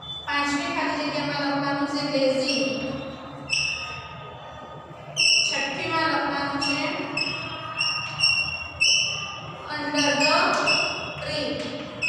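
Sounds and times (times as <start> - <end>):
voices murmuring: 2.0 - 12.0
chalk squeaking on chalkboard: 3.5 - 4.0, 5.2 - 5.6, 6.6 - 11.2.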